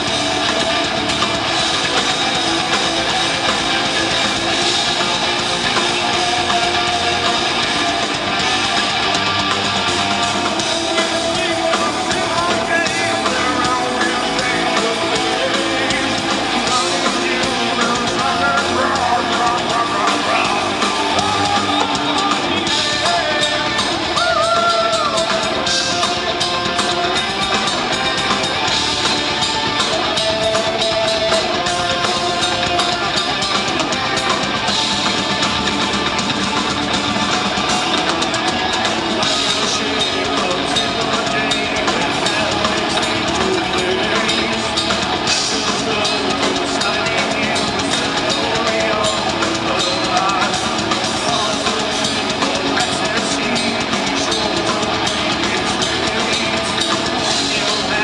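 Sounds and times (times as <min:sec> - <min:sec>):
distorted electric guitars: 0:00.0 - 0:58.0
drum kit: 0:00.0 - 0:58.0.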